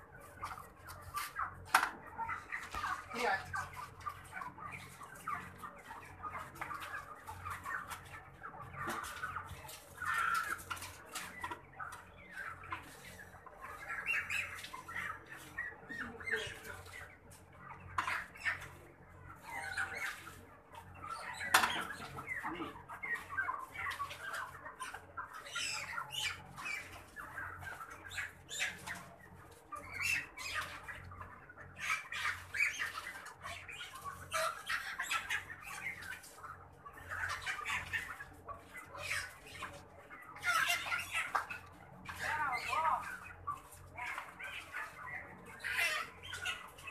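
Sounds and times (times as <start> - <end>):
chickens squawking and cheeping: 0.0 - 46.9.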